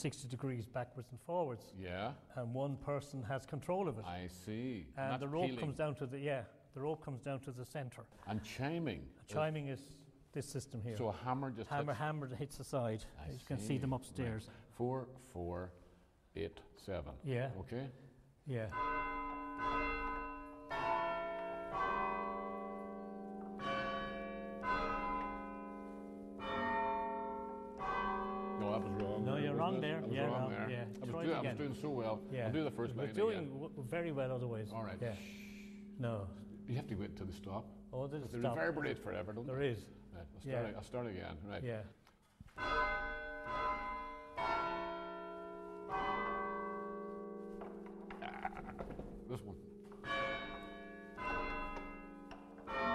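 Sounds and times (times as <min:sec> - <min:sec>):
church bells chiming: 0:18.6 - 0:40.7, 0:42.5 - 0:52.9.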